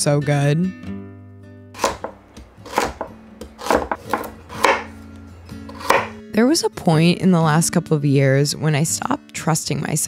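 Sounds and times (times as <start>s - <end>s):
knife slicing on cutting board: 1.8s - 5.0s, 5.7s - 6.2s.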